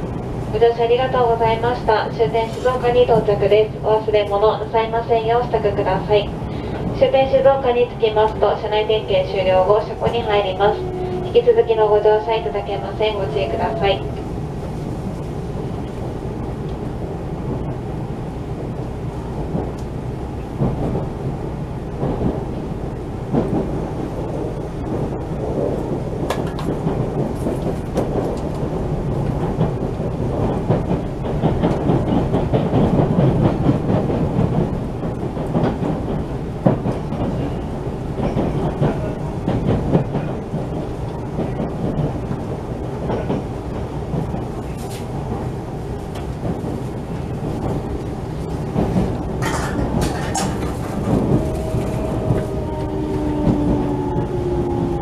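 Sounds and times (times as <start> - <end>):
train wheels rumbling on rail: 0.0 - 55.0
clacks over rail joints: 23.3 - 55.0.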